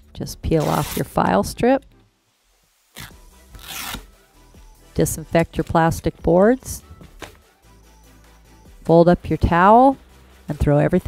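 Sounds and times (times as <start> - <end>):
adhesive strip rasping rip: 3.0 - 4.1.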